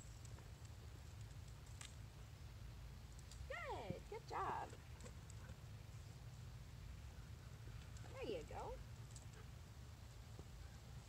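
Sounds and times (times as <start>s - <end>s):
faint low outdoor rumble: 0.0s - 11.0s.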